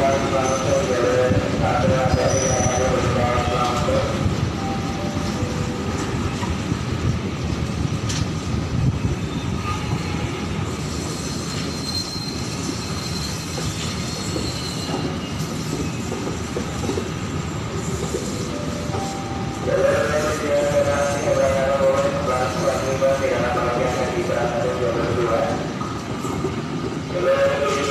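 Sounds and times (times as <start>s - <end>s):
train wheels rumbling on rails: 0.0s - 27.9s
faint high wheel squeal: 2.2s - 2.9s, 10.8s - 16.1s.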